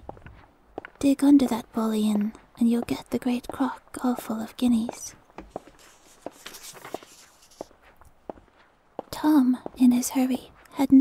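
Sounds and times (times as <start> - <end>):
footsteps on stone pavement: 0.0 - 11.0.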